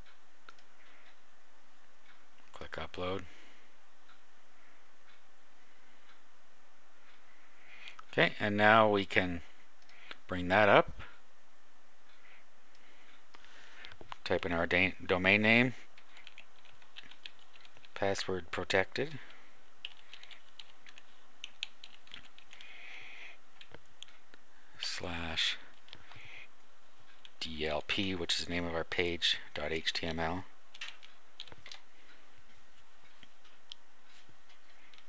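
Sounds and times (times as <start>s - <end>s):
steady background hiss: 0.0s - 35.0s.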